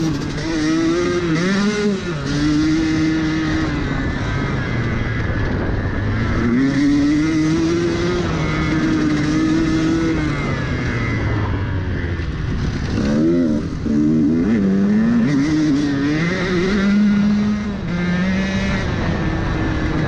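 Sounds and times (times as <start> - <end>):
motorcycle engine revving: 0.0 - 20.0.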